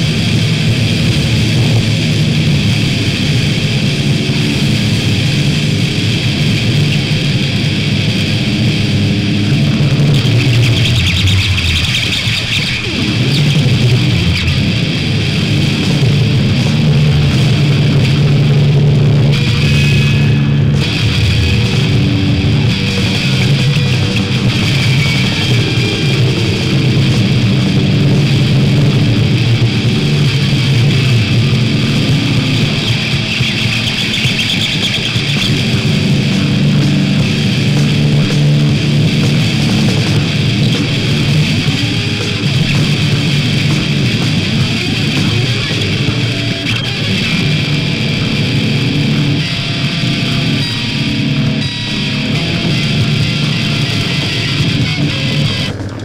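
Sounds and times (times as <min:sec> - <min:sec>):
hardcore punk music: 0:00.0 - 0:56.0.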